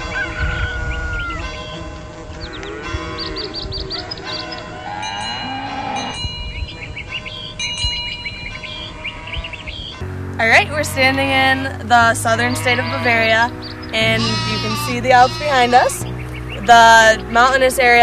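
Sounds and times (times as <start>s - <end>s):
cattle mooing: 0.0s - 6.2s, 8.4s - 16.0s
birds chirping: 0.0s - 18.0s
bells ringing: 1.0s - 2.2s, 2.8s - 18.0s.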